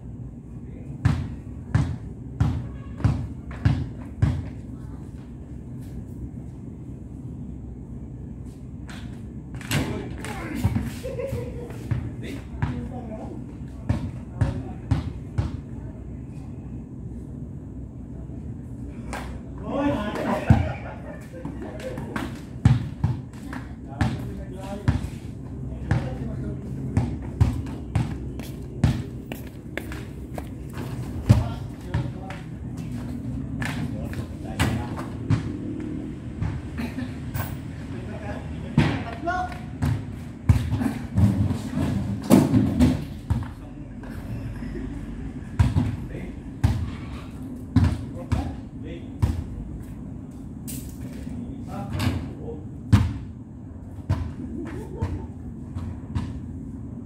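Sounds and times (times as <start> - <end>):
basketball bouncing on concrete: 1.0 - 4.6, 11.7 - 13.0, 13.8 - 15.6, 22.1 - 25.2, 25.8 - 33.0, 38.8 - 43.6, 45.6 - 46.9, 47.8 - 48.6, 49.2 - 49.5, 52.9 - 53.3, 55.0 - 56.5
men's voices: 18.8 - 22.6, 23.8 - 36.0.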